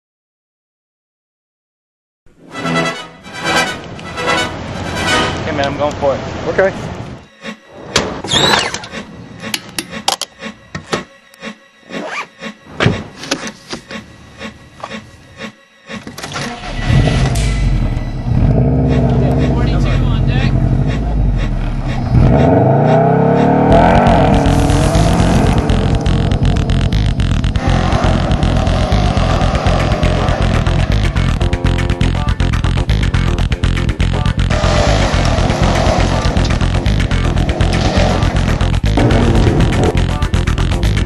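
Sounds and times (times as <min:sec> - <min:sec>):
music: 0:02.3 - 0:41.0
loud car engine running: 0:16.6 - 0:41.0.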